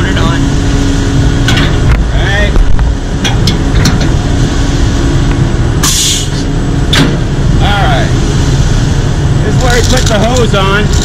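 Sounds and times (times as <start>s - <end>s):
diesel engine running: 0.0s - 11.0s
metal knocks: 2.6s - 4.2s
air hiss: 5.8s - 6.4s.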